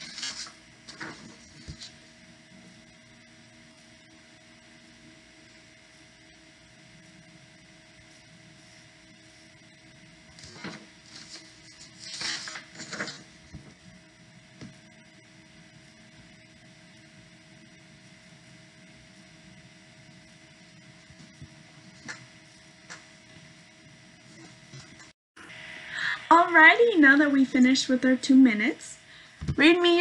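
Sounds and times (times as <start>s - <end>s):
paper sheets rustling: 0.0s - 2.0s, 10.3s - 13.8s
faint room hum: 0.0s - 30.0s.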